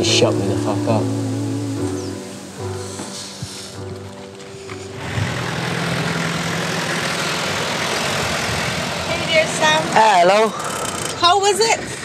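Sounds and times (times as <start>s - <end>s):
van engine idling: 0.0s - 11.5s.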